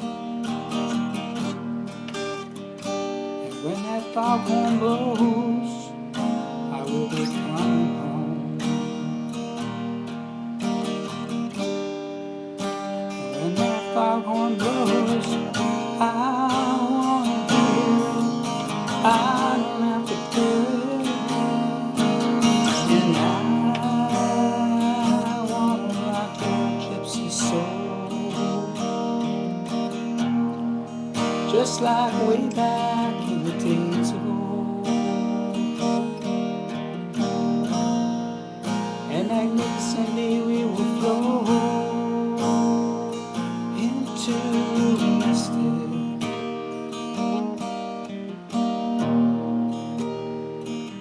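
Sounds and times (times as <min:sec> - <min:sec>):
acoustic guitar playing: 0:00.0 - 0:51.0.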